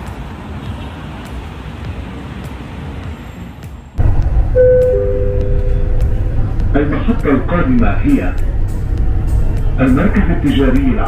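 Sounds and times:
road traffic: 0.0s - 11.0s
train rumble: 0.0s - 11.0s
two-note descending chime: 4.6s - 6.7s.

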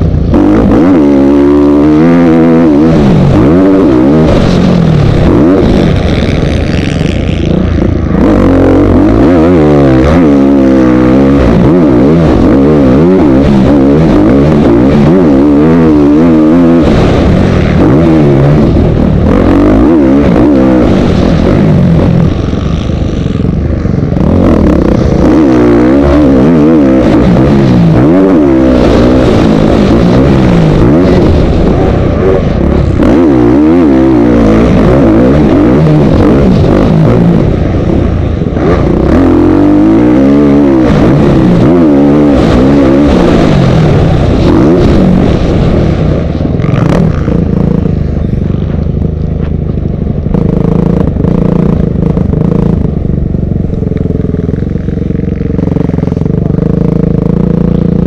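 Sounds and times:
dirt bike engine revving: 0.0s - 58.0s.

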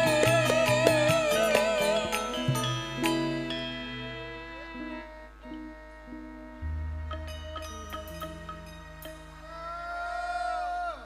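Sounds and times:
instrumental band with gliding notes: 0.0s - 10.4s.

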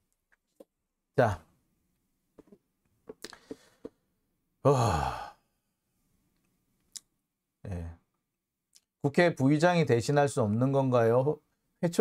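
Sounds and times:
man's sighing hesitation sound: 4.6s - 5.4s.

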